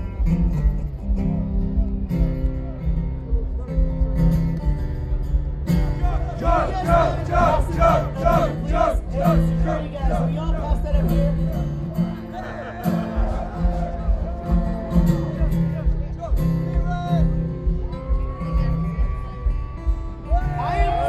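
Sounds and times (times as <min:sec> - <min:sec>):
acoustic guitars strumming: 0:00.0 - 0:21.0
voices chanting rhythmically: 0:05.9 - 0:15.4, 0:19.9 - 0:21.0.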